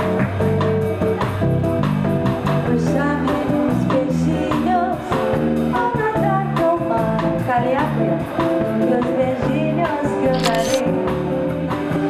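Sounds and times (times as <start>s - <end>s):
bass and drums groove: 10.3s - 10.8s.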